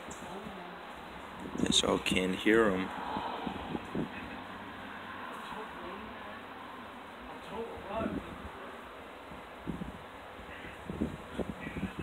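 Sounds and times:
faint distant voices: 0.0s - 12.0s
outdoor background noise: 0.0s - 12.0s.

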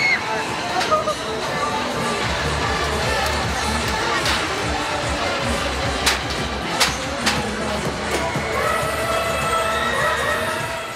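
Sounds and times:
noisy fairground background: 0.0s - 10.9s.

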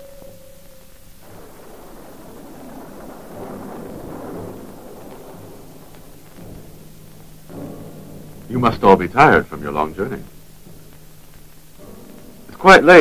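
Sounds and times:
distant thunder rolling: 0.0s - 13.0s
faint film soundtrack hum: 0.0s - 13.0s.

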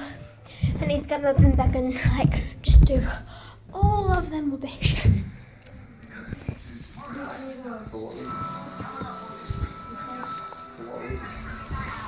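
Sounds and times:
television music: 0.0s - 12.0s
television voices: 0.0s - 12.0s.

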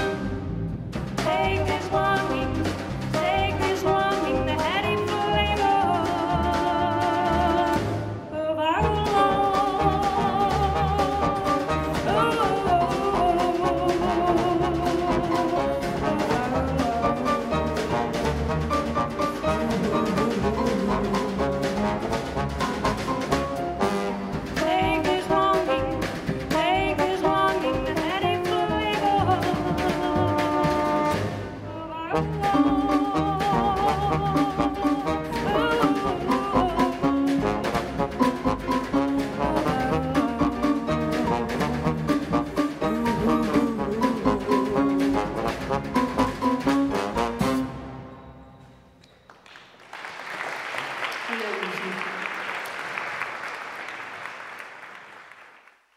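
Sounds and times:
live jazz band playing: 0.0s - 48.1s.

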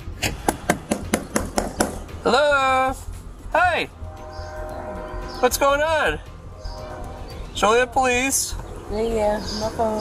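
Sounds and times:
knocking on car window: 0.3s - 2.1s.

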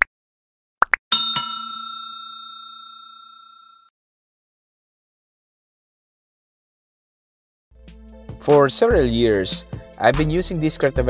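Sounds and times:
bell ding: 1.1s - 3.9s.

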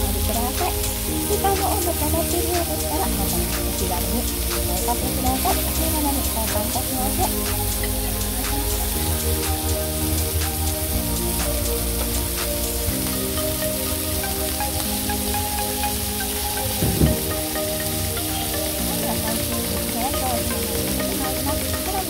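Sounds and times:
background music with chords: 0.0s - 22.0s.

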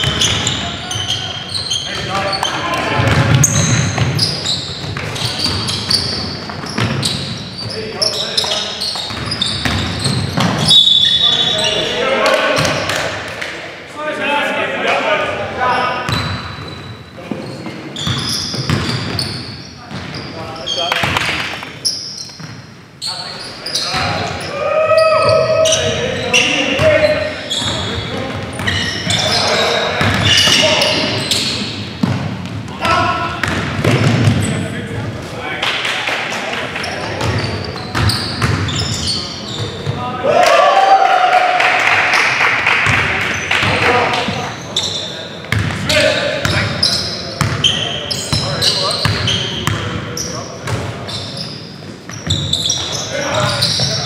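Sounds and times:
ball bouncing on hardwood court: 0.0s - 1.0s, 2.0s - 7.7s, 8.4s - 10.8s, 18.0s - 19.3s, 21.0s - 21.7s, 30.0s - 31.0s, 32.0s - 34.5s, 37.2s - 38.9s, 45.5s - 46.6s
players shouting: 23.9s - 27.2s, 40.1s - 42.2s.

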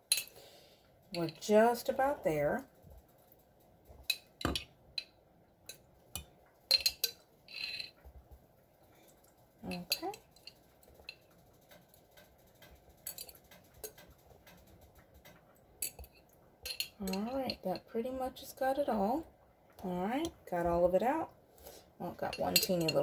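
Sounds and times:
metal utensil scraping glass jar: 6.7s - 8.0s, 22.2s - 23.0s.

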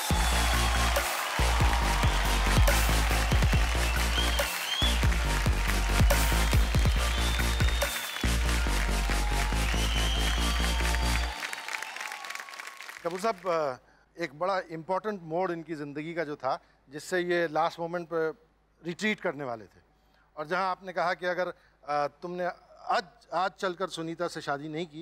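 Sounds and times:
music with pulsing bass beat: 0.0s - 11.3s
applause: 0.0s - 13.7s.

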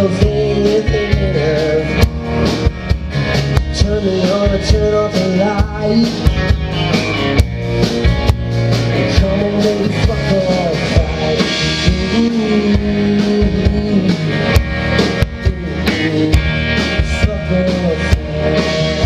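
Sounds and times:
electric and acoustic guitars: 0.0s - 19.0s.

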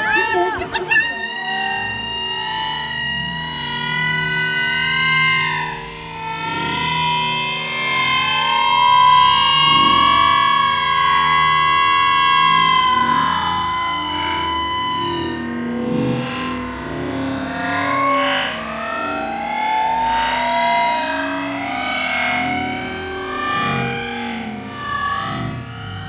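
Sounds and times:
distorted electric guitar: 0.0s - 26.0s.

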